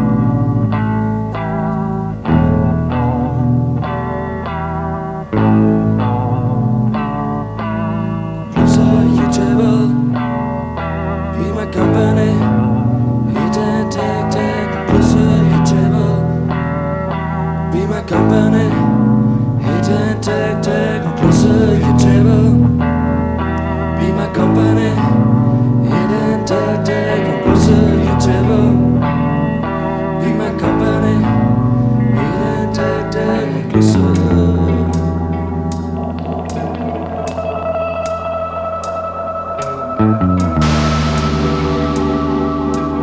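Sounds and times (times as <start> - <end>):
live band with guitar chords: 0.0 - 43.0
held low bass note: 33.8 - 43.0
cymbal ticking: 34.2 - 43.0.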